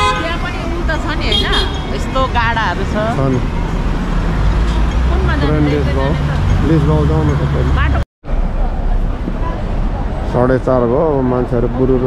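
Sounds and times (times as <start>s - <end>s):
traffic rumble: 0.0s - 12.0s
people's voices: 5.0s - 12.0s.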